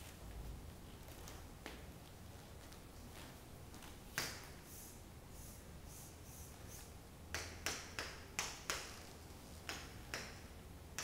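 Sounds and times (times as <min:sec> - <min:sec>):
chalk tapping and scraping on chalkboard: 0:04.2 - 0:10.4.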